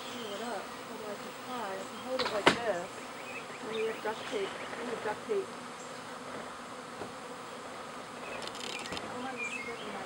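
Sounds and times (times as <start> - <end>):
bee swarm buzzing: 0.0 - 10.0
bees buzzing past: 0.0 - 10.0.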